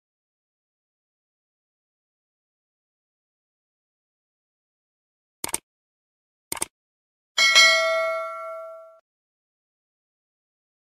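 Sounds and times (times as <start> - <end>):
bright bell ding: 7.4 - 9.0.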